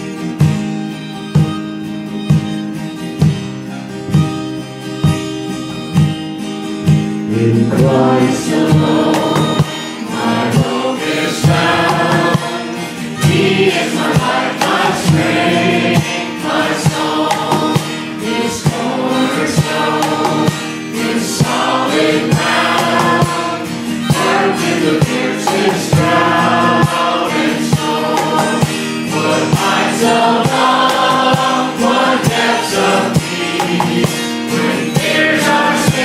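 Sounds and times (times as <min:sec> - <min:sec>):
strummed acoustic guitar: 0:00.0 - 0:36.0
congregation singing: 0:07.2 - 0:36.0
women singing into microphones: 0:07.7 - 0:36.0.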